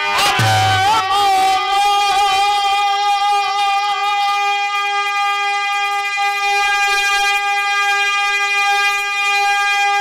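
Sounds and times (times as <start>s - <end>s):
buzzy reed keyboard note: 0.4s - 1.2s.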